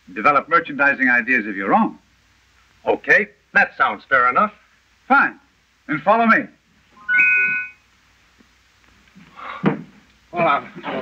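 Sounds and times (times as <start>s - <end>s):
bright bell-like chime: 7.0s - 7.8s.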